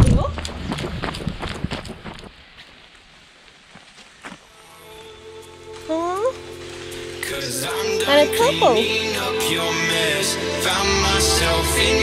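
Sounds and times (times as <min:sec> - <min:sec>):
running footsteps on wet pavement: 0:00.0 - 0:05.1
background music with held tones: 0:04.6 - 0:12.0.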